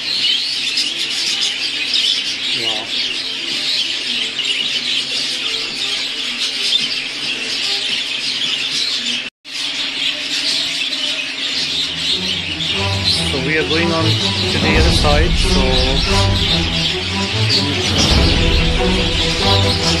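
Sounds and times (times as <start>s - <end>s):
budgerigars chattering and chirping: 0.0s - 14.2s.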